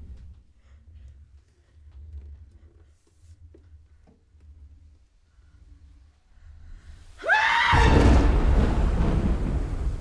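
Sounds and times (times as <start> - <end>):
deep rumbling boom: 7.8 - 10.0.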